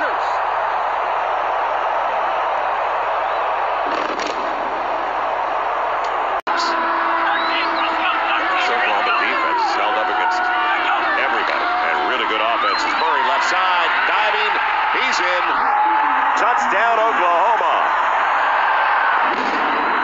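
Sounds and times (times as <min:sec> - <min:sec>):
stadium crowd cheering: 0:00.0 - 0:20.0
people shouting: 0:05.1 - 0:19.2.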